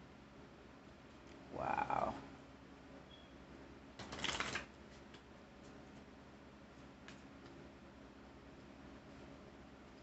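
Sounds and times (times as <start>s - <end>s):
cards shuffling: 4.0s - 5.2s.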